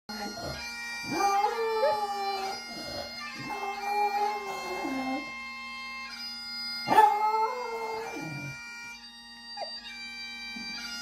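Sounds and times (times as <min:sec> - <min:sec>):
dog howling: 0:00.1 - 0:05.3, 0:06.9 - 0:08.6
bagpipe music from television: 0:00.1 - 0:11.0.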